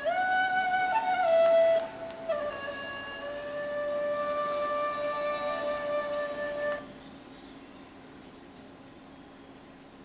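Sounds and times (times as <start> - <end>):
music with held notes: 0.0 - 7.2
faint hiss: 0.0 - 10.0.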